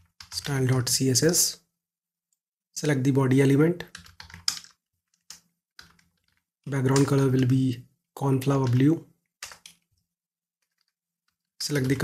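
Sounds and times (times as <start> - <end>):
keyboard keystrokes: 3.9 - 7.5, 8.5 - 9.9.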